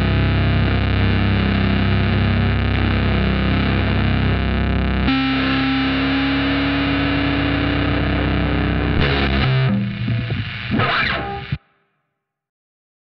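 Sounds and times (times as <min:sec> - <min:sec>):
distorted electric guitar chords: 0:00.0 - 0:11.7.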